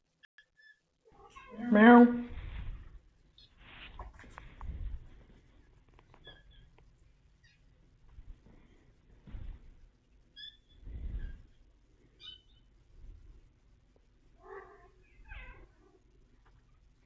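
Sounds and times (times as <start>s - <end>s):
cat meowing: 14.4s - 15.8s.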